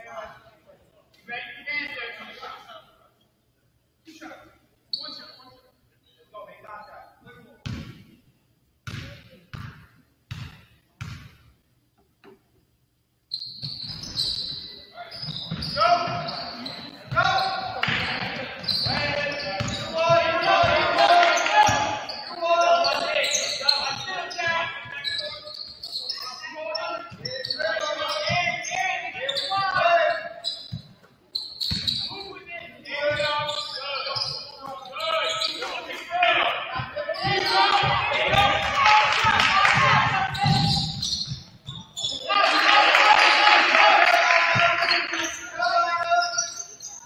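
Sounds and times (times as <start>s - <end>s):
basketball bouncing on wooden floor: 8.9s - 11.4s, 31.7s - 32.0s, 37.2s - 41.8s
people shouting and chattering: 14.2s - 30.5s, 31.2s - 47.0s.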